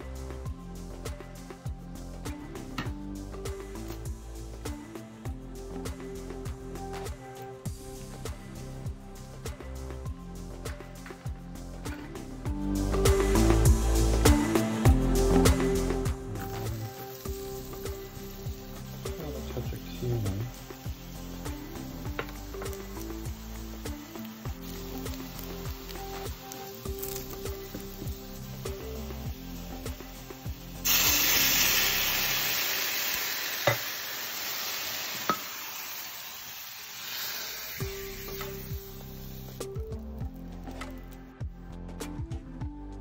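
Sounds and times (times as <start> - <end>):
background music: 0.0 - 43.0
garlic sizzling in oil: 11.9 - 40.2
water hissing in hot pan: 12.8 - 39.8.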